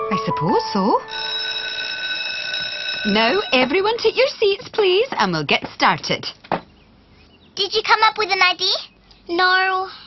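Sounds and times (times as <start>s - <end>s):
school bell ringing: 1.0s - 4.6s.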